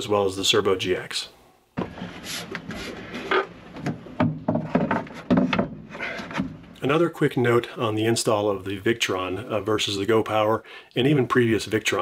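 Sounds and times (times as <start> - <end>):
metal casing scraping and knocking: 1.8 - 6.8.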